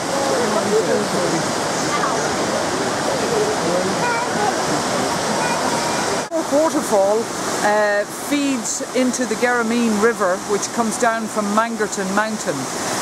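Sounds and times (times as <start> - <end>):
waterfall rushing over rocks: 0.0 - 13.0.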